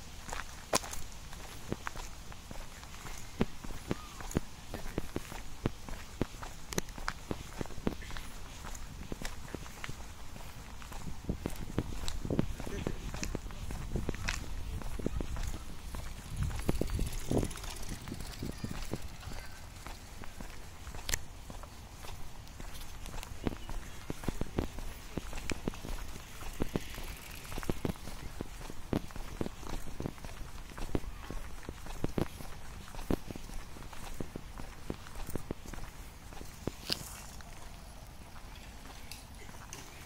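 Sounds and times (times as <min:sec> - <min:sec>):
footsteps on paved path: 0:00.0 - 0:40.0
wind rumble on microphone: 0:07.6 - 0:20.5.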